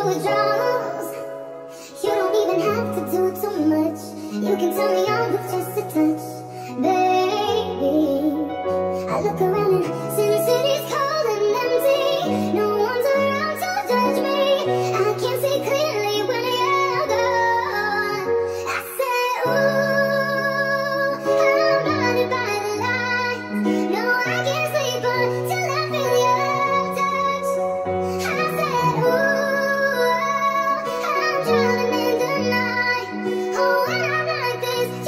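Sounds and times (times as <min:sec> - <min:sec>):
synth-pop backing music: 0:00.0 - 0:35.0.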